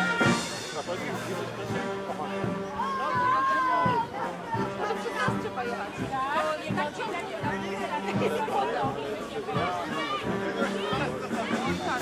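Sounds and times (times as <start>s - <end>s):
brass band playing: 0.0s - 12.0s
people chatting: 0.0s - 12.0s.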